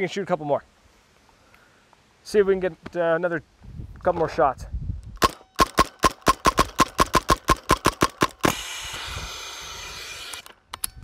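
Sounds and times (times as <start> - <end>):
paintball marker firing rapidly: 5.2 - 8.9.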